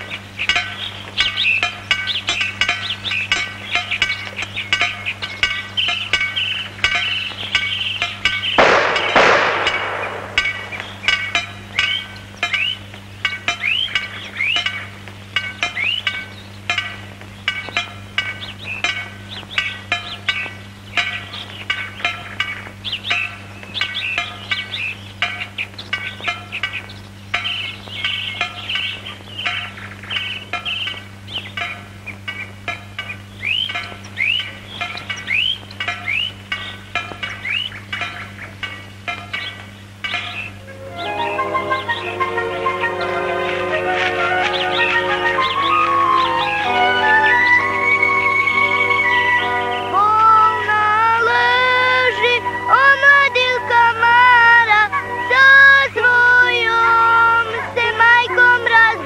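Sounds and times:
birds chirping and whistling: 0.0 - 59.0
steady low hum: 0.0 - 59.0
gunshot: 8.6 - 10.5.

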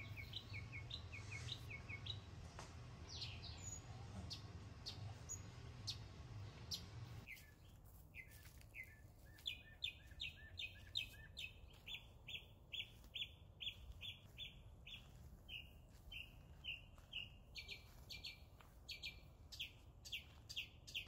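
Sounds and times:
bird chirping: 0.0 - 2.4, 3.0 - 21.0.

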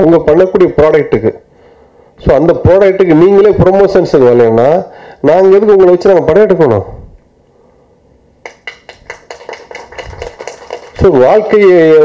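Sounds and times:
light handclaps: 8.4 - 12.0.

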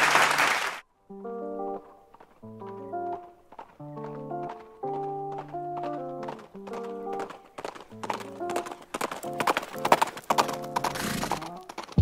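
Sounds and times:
background music with held notes: 1.1 - 10.8
galloping horse hoofbeats: 1.7 - 12.0.

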